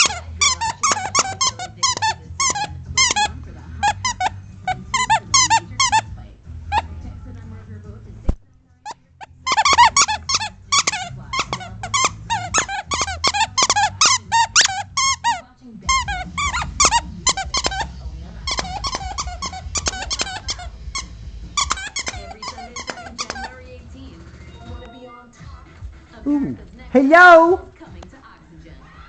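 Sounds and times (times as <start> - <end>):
squeak toy squeaking: 0.0 - 6.1, 6.7 - 6.9, 8.8 - 23.6.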